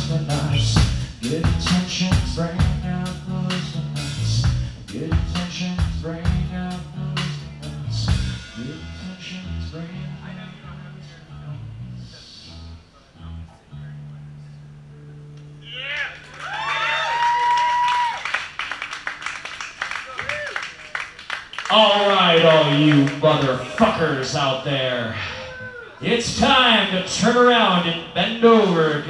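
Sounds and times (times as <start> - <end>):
electric bass notes: 0.0 - 19.8, 21.7 - 25.3, 26.0 - 29.0
electric guitar notes: 0.0 - 19.9.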